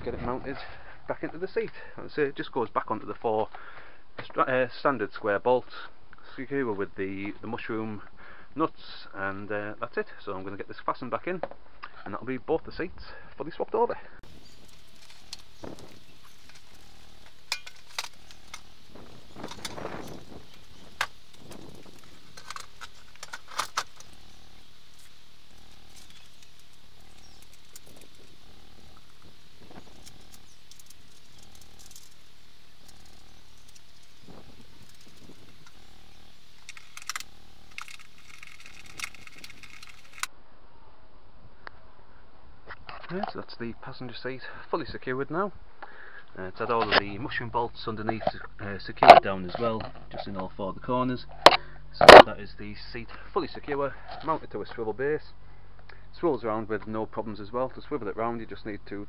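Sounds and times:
steady faint hiss: 0.0s - 59.0s
hand tools clinking on bolts: 17.5s - 18.6s
quick clicks: 36.6s - 40.3s.

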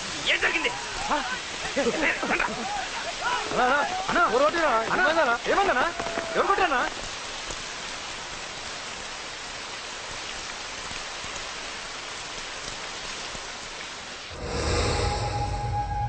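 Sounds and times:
water spraying from burst pipe: 0.0s - 15.4s.

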